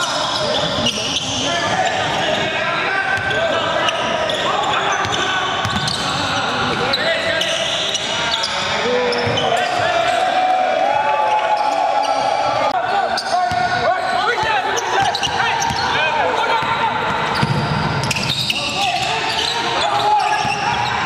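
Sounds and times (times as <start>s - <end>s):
sneakers squeaking: 0.0s - 10.4s, 11.3s - 21.0s
players shouting: 0.0s - 21.0s.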